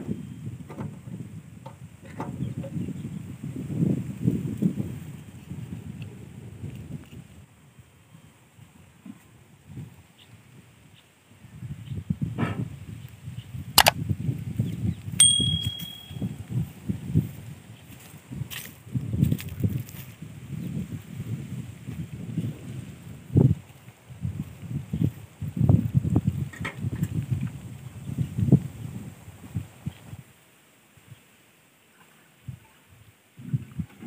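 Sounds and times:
bright metallic ding: 15.2 - 16.4
footsteps on dry stubble: 16.6 - 26.0.

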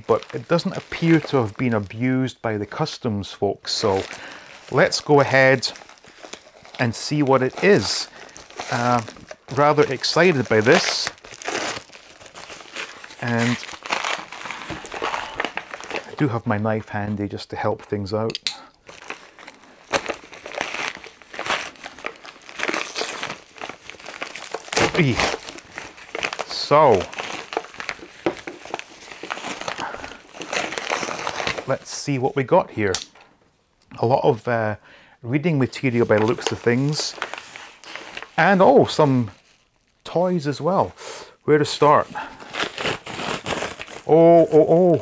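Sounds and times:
plastic crinkling and rustling: 0.0 - 34.5, 35.4 - 40.8, 41.7 - 45.0
knife cutting plastic bag: 3.8 - 16.2, 18.9 - 31.8, 42.2 - 45.0.

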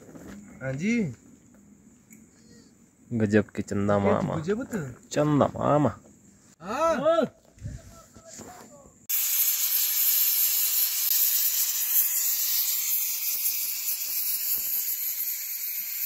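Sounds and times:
pressure cooker venting steam: 9.1 - 16.0.

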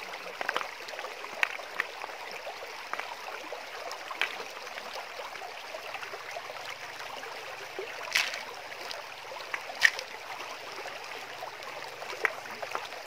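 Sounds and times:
stream running over stones: 0.0 - 13.0
hands splashing in water: 8.0 - 8.6, 9.7 - 10.2.

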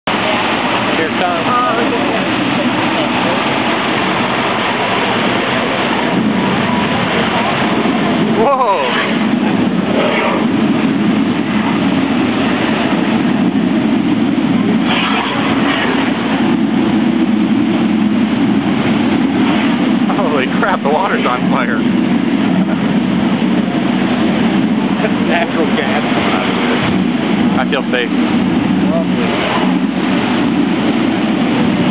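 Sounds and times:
roar of water jets and flames: 0.0 - 31.9
crowd voices: 0.1 - 31.9.

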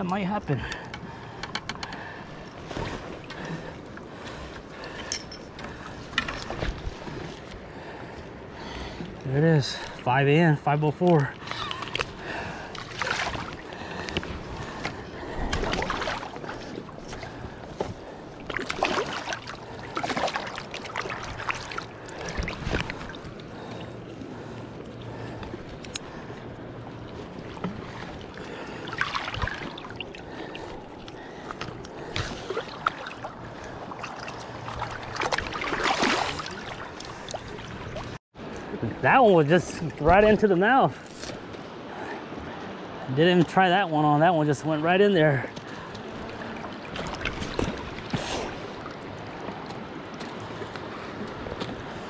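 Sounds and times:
steady background water wash: 0.0 - 52.0.

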